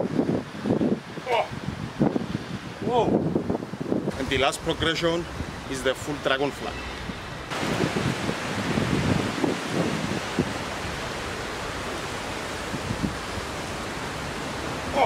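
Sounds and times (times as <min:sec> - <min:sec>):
wind noise on microphone: 0:00.0 - 0:15.0.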